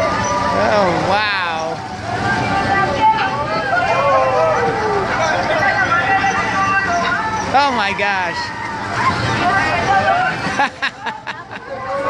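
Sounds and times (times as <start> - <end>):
people calling out: 0.0 - 12.0
road train ride running: 0.0 - 12.0.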